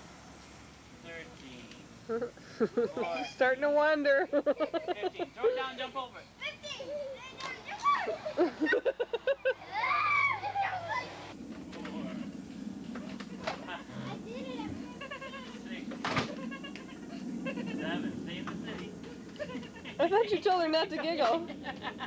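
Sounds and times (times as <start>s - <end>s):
children calling and squealing: 6.2s - 12.4s, 13.8s - 17.8s
faint voices: 9.6s - 21.6s
steady low rumbling: 10.8s - 22.0s.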